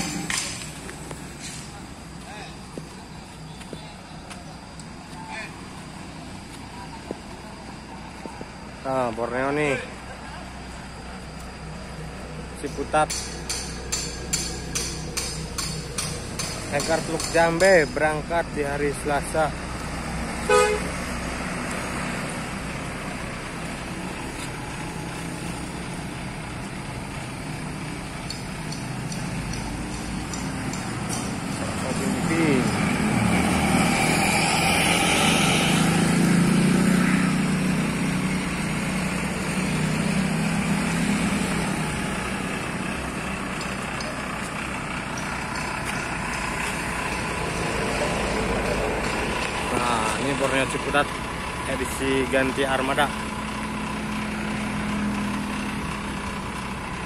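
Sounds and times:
bus engine rumble passing: 0:00.0 - 0:57.0
bus horn: 0:20.4 - 0:21.0.

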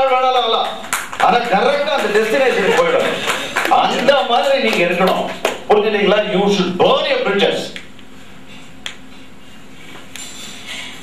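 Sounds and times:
low hum of room noise: 0:00.0 - 0:11.0.

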